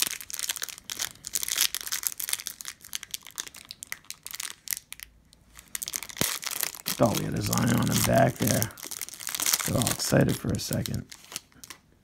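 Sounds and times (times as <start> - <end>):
plastic wrapper crinkling: 0.0 - 11.9.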